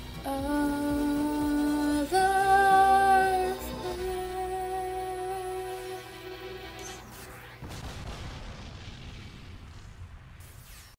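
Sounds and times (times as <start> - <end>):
low rumbling blast: 7.5 - 10.6.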